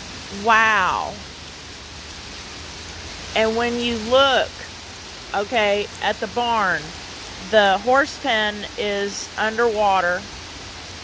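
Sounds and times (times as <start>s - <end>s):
heavy rain pouring: 0.0s - 11.0s.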